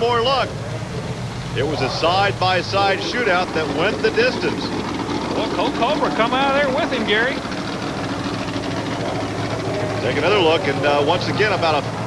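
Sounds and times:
low hum: 0:00.0 - 0:12.0
monster truck engines droning: 0:00.0 - 0:12.0.

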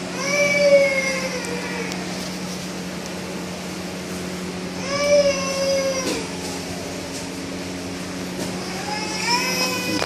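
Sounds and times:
steady low hum: 0:00.0 - 0:10.0
baby crying: 0:08.6 - 0:10.0.

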